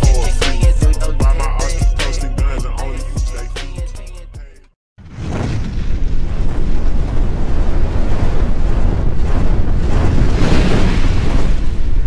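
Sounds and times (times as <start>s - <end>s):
rumbling whooshing sound effect: 5.0s - 12.0s.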